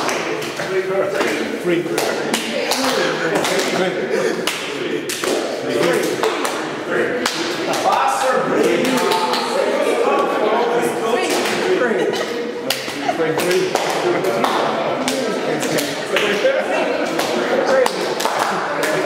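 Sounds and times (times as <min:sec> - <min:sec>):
hand claps and slaps: 0:00.0 - 0:09.6, 0:11.2 - 0:16.4, 0:17.0 - 0:19.0
people talking and laughing: 0:00.0 - 0:19.0.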